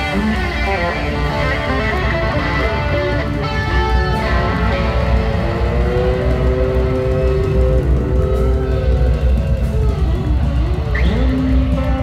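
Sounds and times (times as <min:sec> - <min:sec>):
electric guitar lead notes: 0:00.0 - 0:12.0
live blues band: 0:00.0 - 0:12.0.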